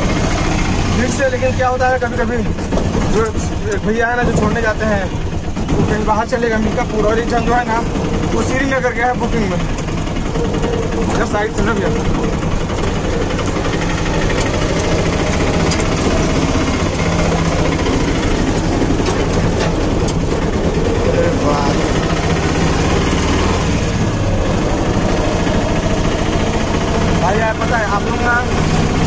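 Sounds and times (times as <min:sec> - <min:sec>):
auto-rickshaw engine running: 0:00.0 - 0:29.0.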